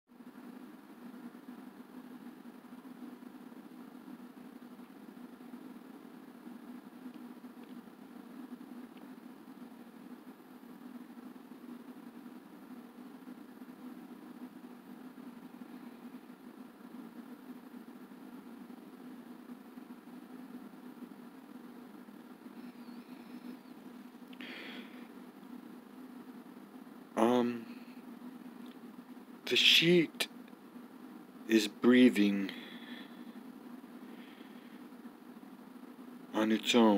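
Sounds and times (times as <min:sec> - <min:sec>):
faint low hum: 0:00.1 - 0:36.9
even hiss: 0:00.2 - 0:36.9.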